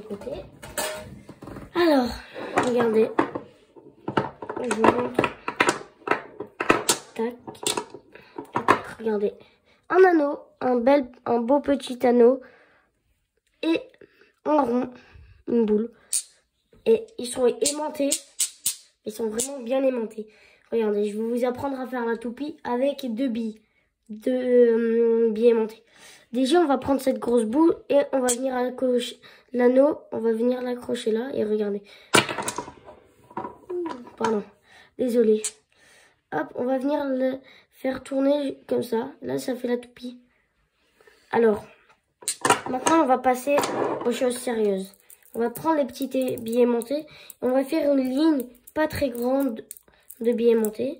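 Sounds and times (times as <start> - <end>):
magnets clacking together: 4.1 - 8.8, 16.1 - 16.4, 17.6 - 19.6, 28.3 - 28.5, 32.2 - 34.4, 35.4 - 35.6, 42.2 - 50.9
magnets clicking together: 16.1 - 16.4, 17.6 - 19.6, 28.3 - 28.5, 35.4 - 35.6, 42.2 - 43.0, 44.9 - 45.4, 46.0 - 47.5, 48.1 - 50.8.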